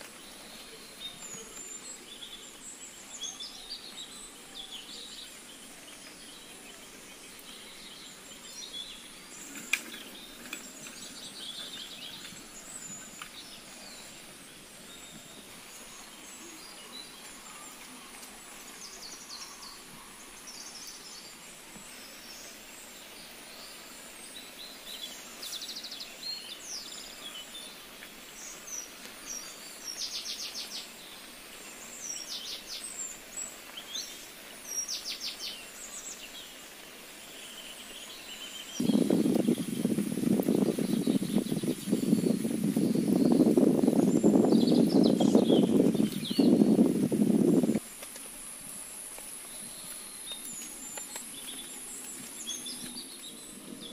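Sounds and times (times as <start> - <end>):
birds chirping: 0.0 - 53.9
light rain hissing: 0.0 - 53.9.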